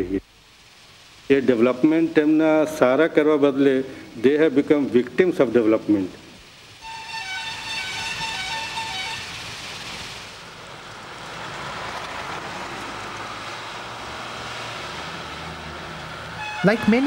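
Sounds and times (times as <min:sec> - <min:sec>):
trucks rushing on road: 0:06.8 - 0:17.0.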